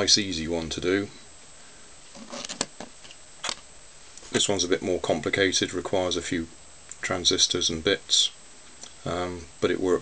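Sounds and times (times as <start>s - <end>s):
soft rustle: 2.0s - 3.2s.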